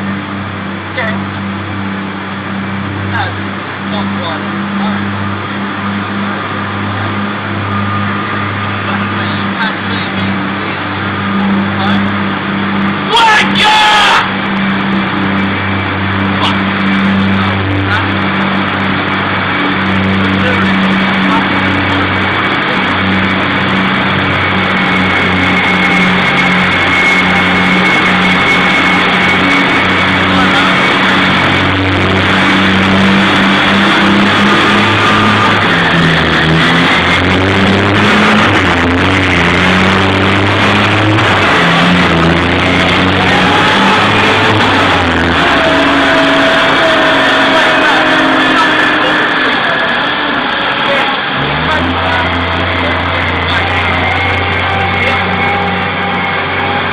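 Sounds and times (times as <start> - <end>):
heavy vehicle engine humming: 0.0 - 56.9.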